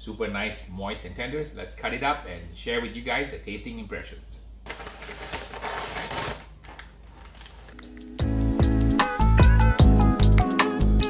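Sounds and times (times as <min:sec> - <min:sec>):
paper crinkling: 0:04.7 - 0:08.0
music with deep bass: 0:07.9 - 0:11.0.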